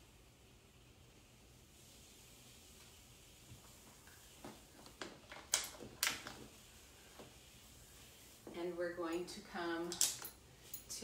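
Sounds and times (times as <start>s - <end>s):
strap clips clicking and knocking: 9.9s - 10.4s.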